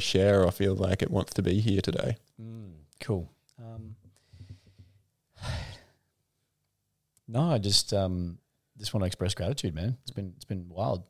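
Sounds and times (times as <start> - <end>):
man sighing: 5.3 - 6.0.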